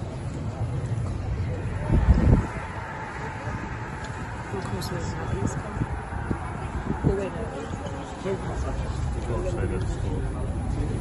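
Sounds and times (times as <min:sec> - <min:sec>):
indistinct voices: 0:00.0 - 0:11.0
steady low rumble: 0:00.0 - 0:11.0.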